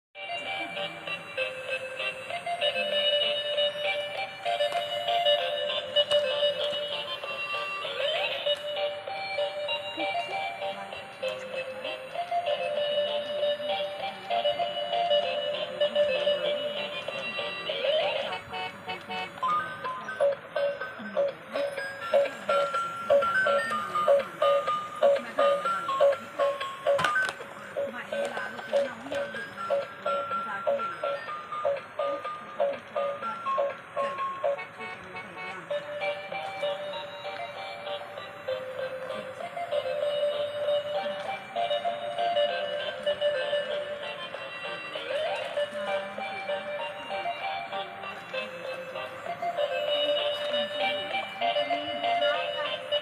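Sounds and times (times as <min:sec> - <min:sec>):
toy beeping melody: 0:00.2 - 0:53.0.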